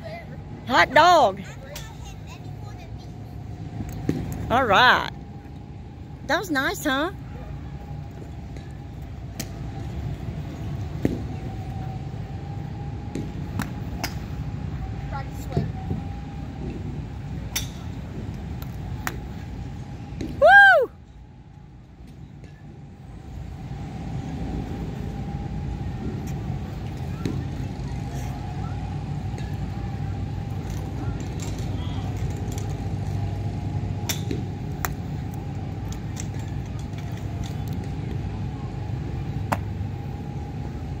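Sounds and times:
high whoop: 0:20.3 - 0:21.1
golf clubs striking balls: 0:34.0 - 0:35.0.

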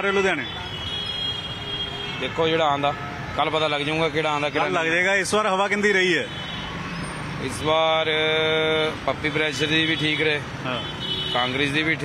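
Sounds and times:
street noise: 0:00.0 - 0:12.0
vehicle horn long steady note: 0:00.1 - 0:03.2, 0:10.8 - 0:11.6.

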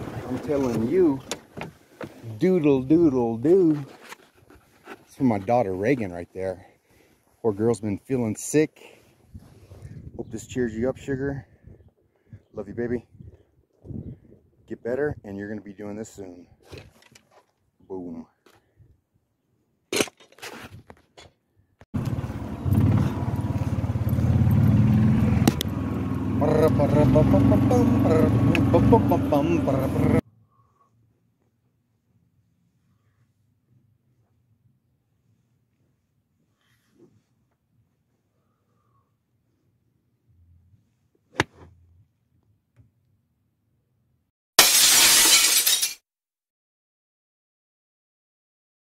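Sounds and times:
golf cart engine running: 0:22.0 - 0:30.2.

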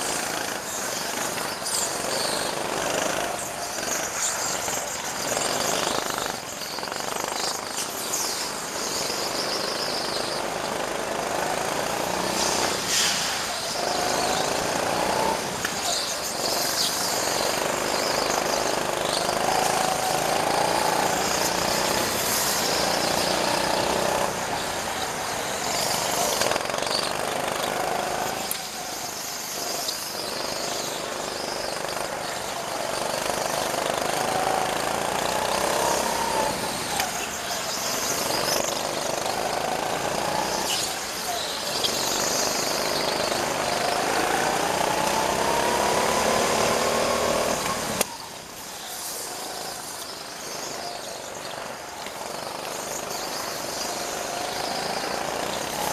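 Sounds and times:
go-kart engines revving: 0:00.0 - 0:55.9
road and wind noise: 0:00.0 - 0:55.9.

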